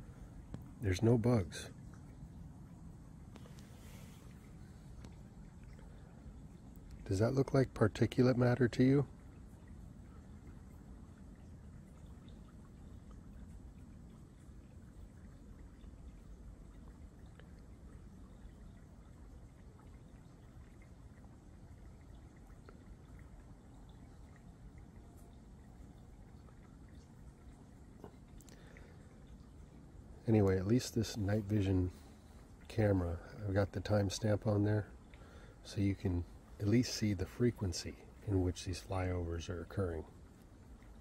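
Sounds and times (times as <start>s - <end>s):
faint low background rumble: 0.0s - 41.0s.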